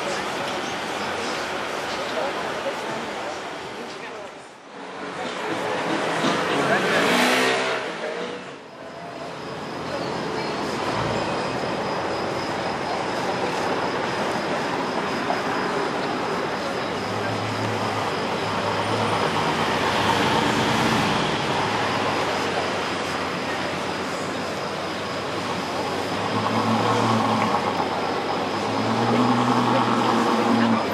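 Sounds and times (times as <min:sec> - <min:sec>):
traffic noise: 0:00.0 - 0:30.9
voices: 0:00.0 - 0:30.9
car engine droning: 0:04.8 - 0:30.9.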